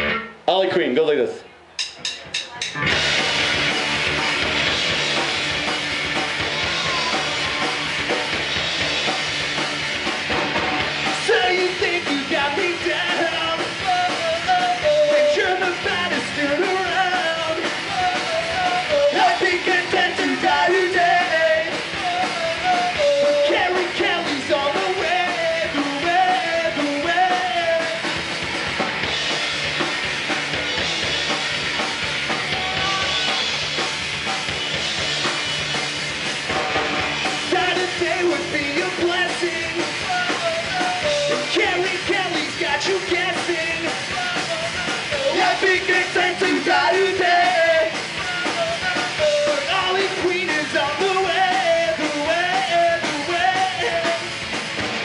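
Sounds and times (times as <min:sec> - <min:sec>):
electric guitar: 0:00.0 - 0:00.4, 0:02.8 - 0:55.0
bass guitar: 0:00.0 - 0:55.0
drum kit: 0:00.0 - 0:55.0
person singing lead vocal: 0:11.2 - 0:28.0, 0:37.4 - 0:54.4.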